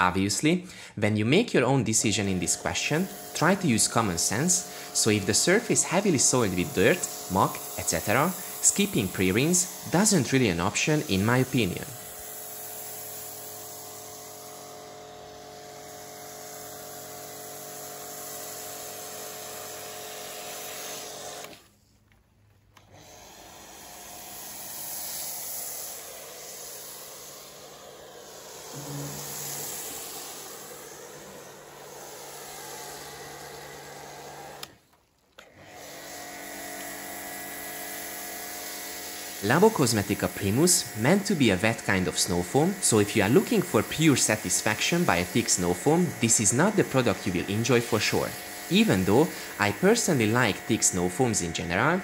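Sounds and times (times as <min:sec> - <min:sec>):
pressure washer motor hum: 0:00.0 - 0:21.7, 0:22.8 - 0:52.0
foam spray hissing: 0:02.1 - 0:21.6, 0:23.0 - 0:34.6, 0:35.9 - 0:51.7.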